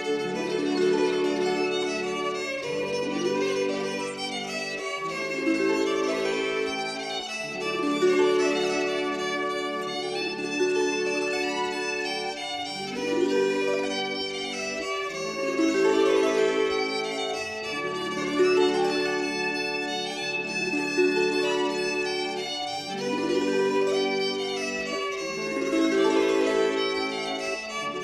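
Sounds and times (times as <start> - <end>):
folk dance music with violin: 0.0 - 28.0.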